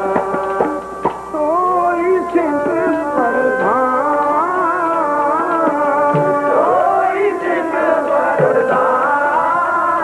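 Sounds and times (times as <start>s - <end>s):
harmonium chords: 0.0s - 10.0s
man singing: 0.0s - 10.0s
tabla strokes: 0.0s - 10.0s.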